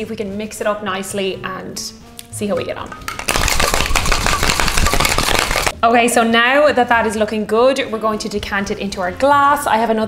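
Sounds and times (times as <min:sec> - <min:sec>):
cocktail shaker rattling: 0:02.9 - 0:05.8.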